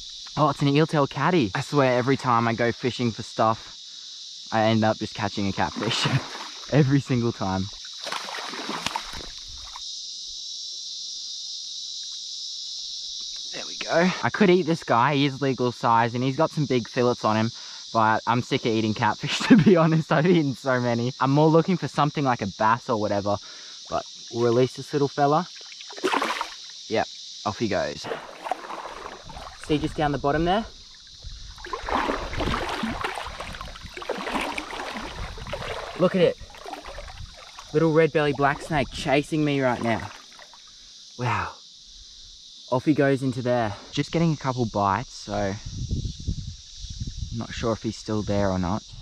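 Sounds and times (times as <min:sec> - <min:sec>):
high-pitched insect chorus: 0:00.0 - 0:49.0
fish splashing at water surface: 0:05.6 - 0:06.8, 0:07.9 - 0:09.8, 0:25.6 - 0:26.7, 0:28.0 - 0:30.0, 0:30.8 - 0:39.0, 0:39.8 - 0:40.7.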